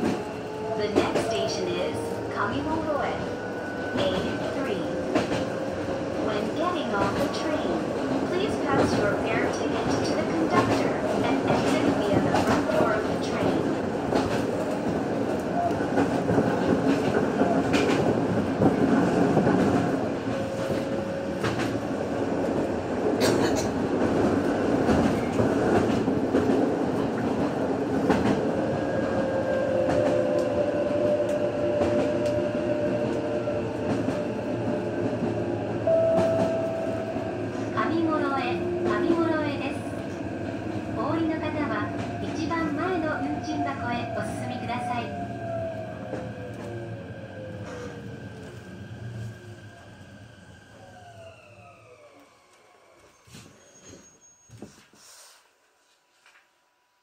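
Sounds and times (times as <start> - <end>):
train wheels rumbling on track: 0.0 - 52.4
train whine shifting in pitch: 28.6 - 39.0, 42.2 - 54.6.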